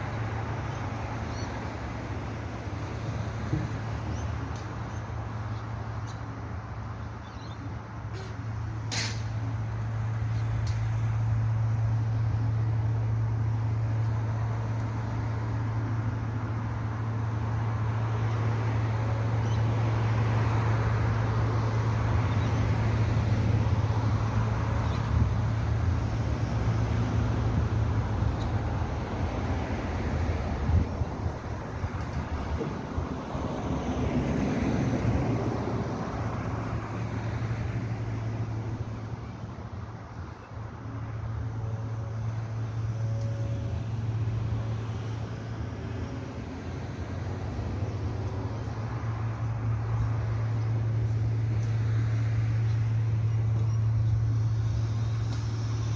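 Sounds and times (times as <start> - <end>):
cars passing: 0.0 - 55.9.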